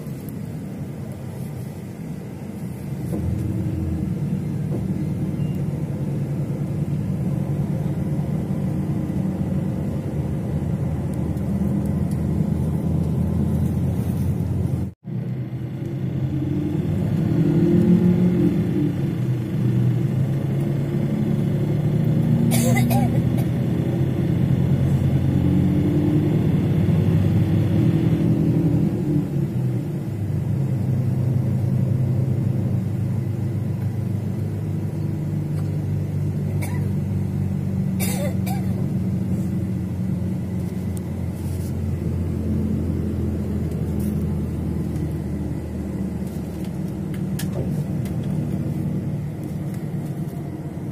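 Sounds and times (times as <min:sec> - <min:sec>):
low road rumble in vehicle: 0:00.0 - 0:50.9.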